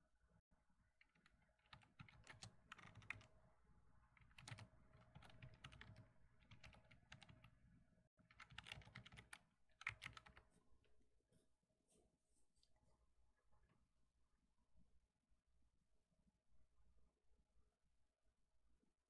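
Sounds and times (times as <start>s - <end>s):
faint keyboard typing: 1.0s - 10.6s.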